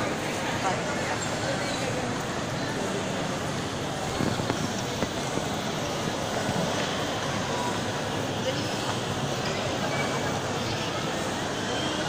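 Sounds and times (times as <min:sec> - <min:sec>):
shopping mall ambient hum: 0:00.0 - 0:12.0.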